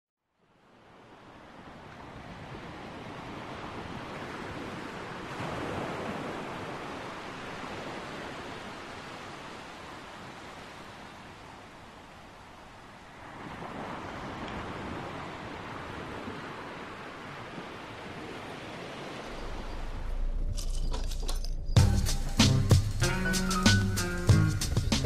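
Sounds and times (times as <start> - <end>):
sea waves washing onto shore: 0.7 - 20.4.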